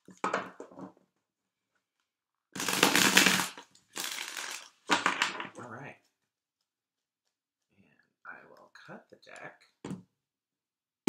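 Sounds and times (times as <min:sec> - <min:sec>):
cards being shuffled: 0:02.6 - 0:04.7.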